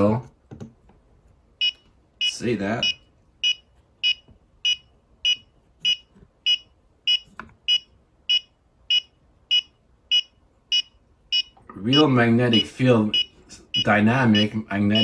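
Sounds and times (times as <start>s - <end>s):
meter alarm high beeps: 1.6s - 15.0s.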